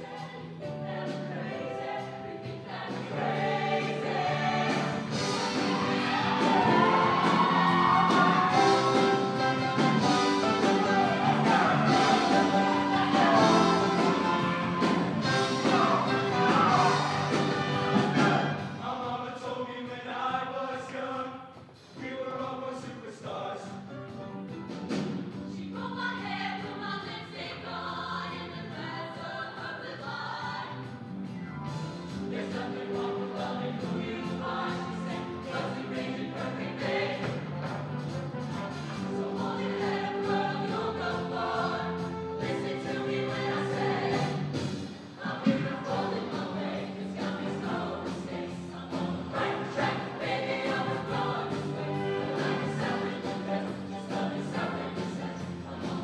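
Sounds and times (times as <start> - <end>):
mixed choir singing: 0.0 - 23.8, 25.5 - 30.9, 32.1 - 56.0
instrumental accompaniment: 1.8 - 18.8.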